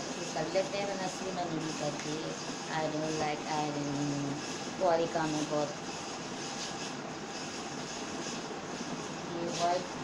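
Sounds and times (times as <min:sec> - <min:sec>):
hiss-like hum: 0:00.0 - 0:10.0.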